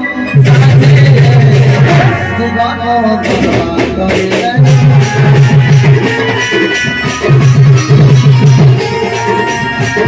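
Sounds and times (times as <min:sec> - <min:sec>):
folk music with percussion: 0:00.0 - 0:10.0
heavy low drum beat: 0:00.3 - 0:10.0.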